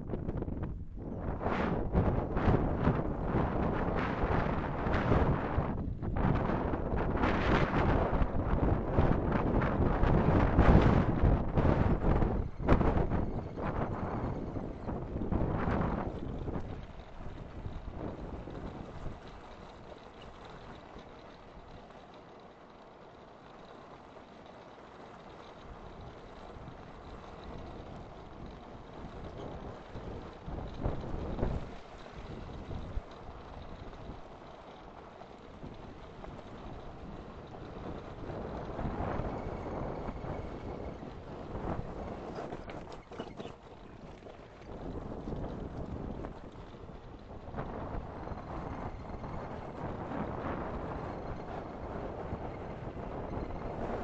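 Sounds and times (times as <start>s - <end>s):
wheels rumbling over gravel: 0.0s - 54.0s
wind buffeting microphone: 0.0s - 54.0s.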